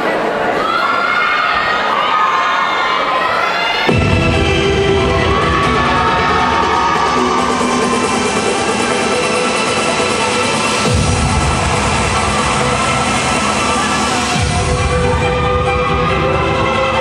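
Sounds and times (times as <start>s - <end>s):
audience cheering and shouting: 0.0s - 17.0s
dance music with heavy bass: 3.9s - 17.0s.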